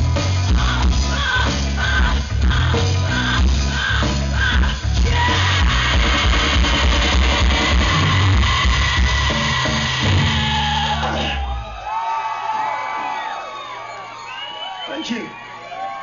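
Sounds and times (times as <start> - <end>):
live rock band playing: 0.0 - 11.8
crowd cheering and whistling: 7.2 - 16.0.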